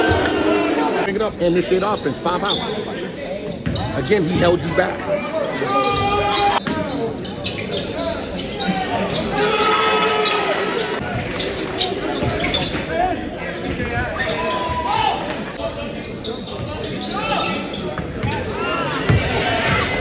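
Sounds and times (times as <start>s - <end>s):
players and crowd shouting: 0.0s - 2.6s, 4.0s - 20.0s
sneaker squeaks: 1.2s - 4.2s, 5.4s - 13.0s, 13.6s - 20.0s
basketball bouncing on court: 18.0s - 18.4s, 19.1s - 20.0s.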